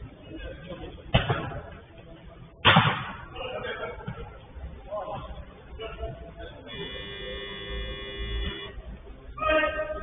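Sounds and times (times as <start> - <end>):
steady buzzing tone: 5.5 - 10.0.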